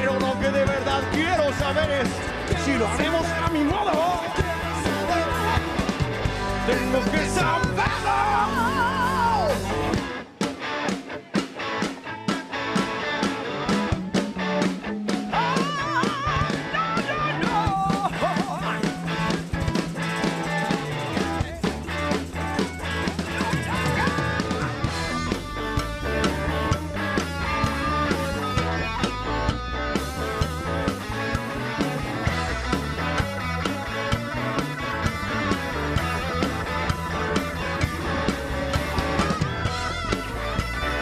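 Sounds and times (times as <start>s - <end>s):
bass line: 0.0s - 10.5s, 11.8s - 41.0s
drum kit: 0.0s - 41.0s
electric guitars: 0.0s - 41.0s.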